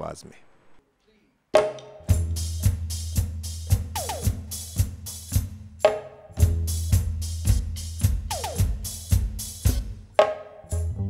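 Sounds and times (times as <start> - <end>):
electronic drum beat: 1.6 - 10.3
sustained low bass: 6.4 - 9.8, 10.7 - 11.0.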